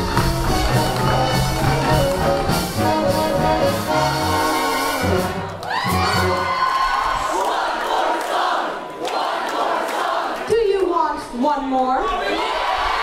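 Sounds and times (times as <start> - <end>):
swing band with brass and bass: 0.0 - 6.5
crowd cheering and whooping: 4.5 - 8.2, 12.1 - 13.0.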